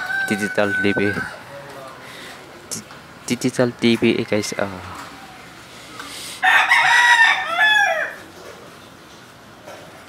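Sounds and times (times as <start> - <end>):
rooster crowing: 0.0 - 1.8, 6.4 - 8.3.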